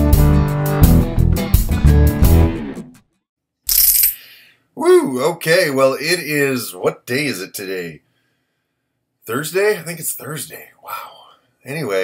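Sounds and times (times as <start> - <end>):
music: 0.0 - 3.2
man speaking: 4.8 - 8.0, 9.3 - 12.0.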